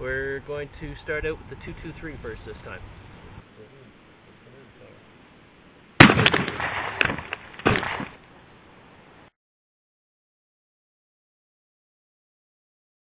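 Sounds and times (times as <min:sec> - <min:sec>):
rifle shot: 0:06.0 - 0:08.2
sharp knocks: 0:06.0 - 0:08.2
water bottles bursting and splashing: 0:06.0 - 0:08.2.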